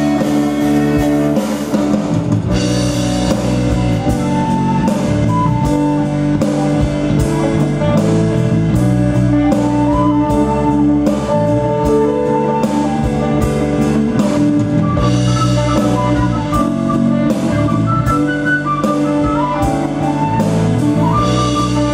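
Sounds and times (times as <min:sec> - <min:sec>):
drum kit: 0:00.0 - 0:21.9
guitar: 0:00.0 - 0:21.9
live band playing: 0:00.0 - 0:21.9.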